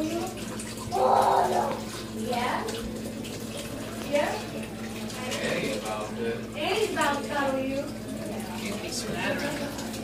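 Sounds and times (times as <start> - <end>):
liquid pouring into a strainer: 0.0 - 10.0.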